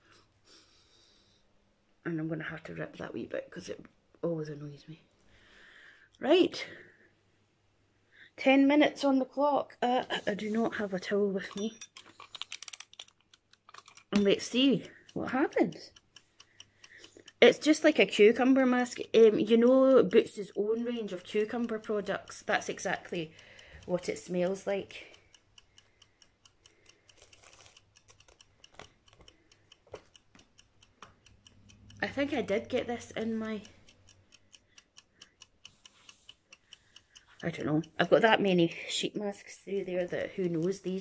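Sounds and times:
clockwork ticking: 9.8s - 41.0s
timer dial clicks: 11.5s - 41.0s.

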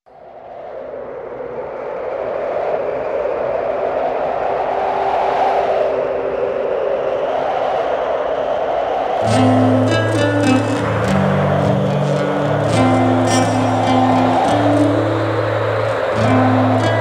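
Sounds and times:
rushing noise drone: 0.1s - 17.0s.

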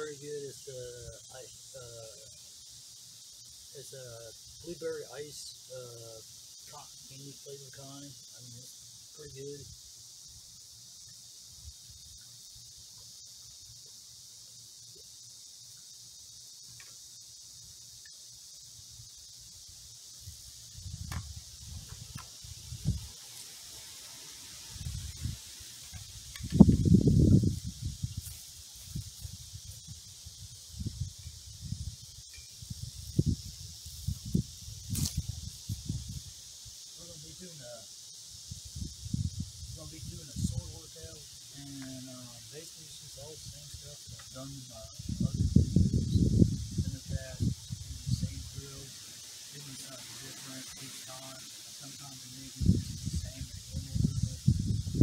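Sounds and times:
insects hissing: 0.0s - 55.0s.

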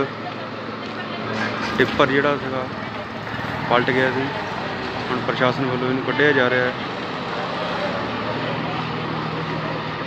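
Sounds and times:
diesel truck engine humming: 0.0s - 10.0s
street traffic noise: 0.0s - 10.0s.

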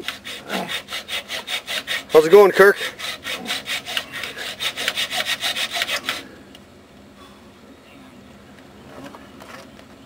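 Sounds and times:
hand saw cutting metal: 0.0s - 6.3s.

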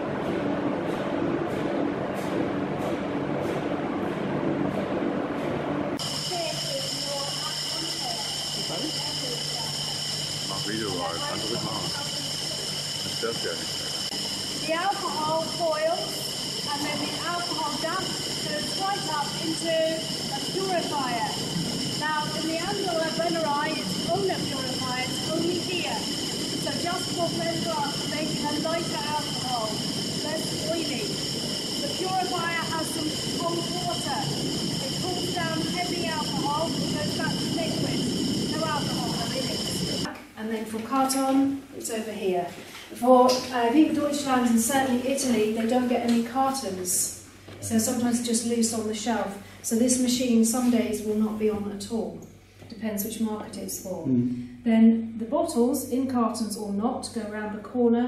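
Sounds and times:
high-pitched machine whine and hiss: 0.0s - 54.2s
machinery hum: 0.0s - 57.8s
woman talking: 6.1s - 10.0s, 11.0s - 12.8s, 14.6s - 21.4s, 22.0s - 31.2s, 31.8s - 58.0s.

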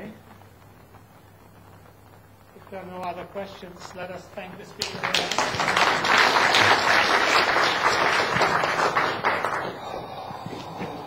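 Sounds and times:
faint room noise: 0.0s - 11.0s
audience applause: 4.6s - 11.0s.

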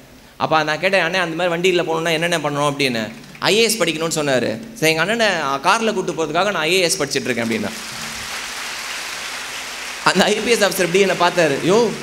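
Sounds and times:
audience applauding: 7.2s - 12.0s.

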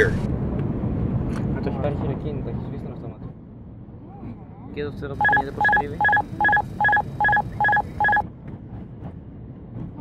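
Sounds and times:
synthetic cockpit warning voice: 5.2s - 8.2s.

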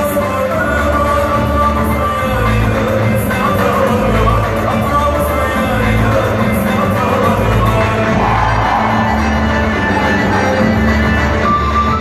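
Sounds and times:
folk-dance music: 0.0s - 12.0s.

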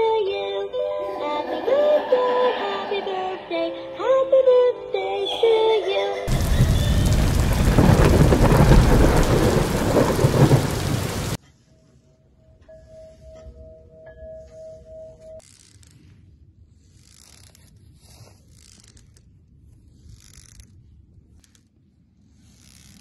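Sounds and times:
toy singing in synthetic voice: 0.0s - 6.3s
rushing rumbling noise: 6.3s - 11.4s.

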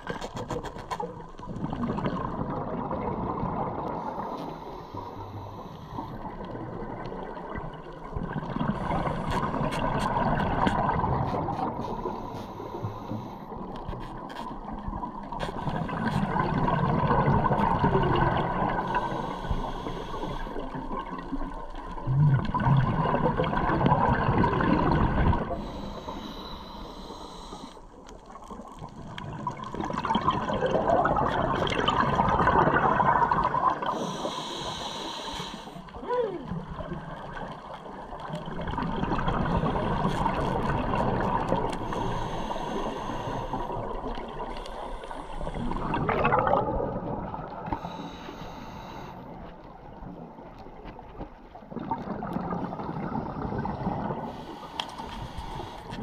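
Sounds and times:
gurgling exhale bubbles: 0.0s - 26.3s, 27.9s - 56.0s
regulator hiss on inhale: 4.0s - 6.5s, 11.8s - 14.0s, 18.7s - 20.8s, 25.5s - 28.0s, 33.8s - 35.9s, 41.6s - 45.8s, 47.6s - 49.5s, 54.2s - 56.0s.

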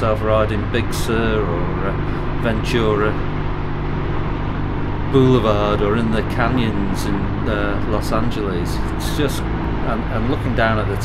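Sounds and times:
motorcycle engine droning: 0.0s - 11.0s.

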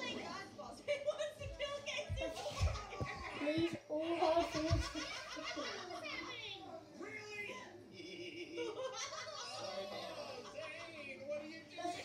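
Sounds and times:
child talking and giggling: 1.9s - 6.6s.

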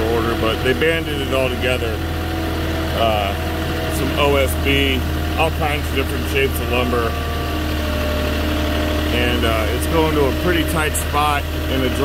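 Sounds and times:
forklift engine humming: 0.0s - 12.0s.

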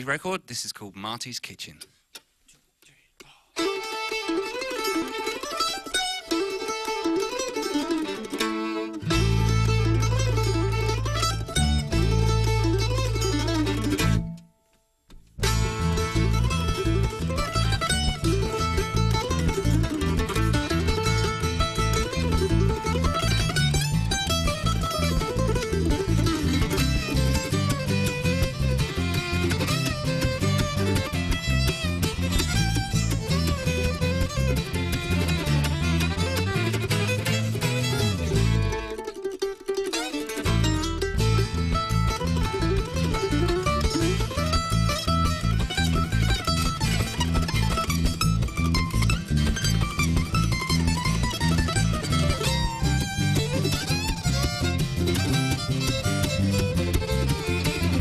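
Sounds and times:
acoustic string band instrumental: 3.6s - 14.4s, 15.3s - 58.0s.

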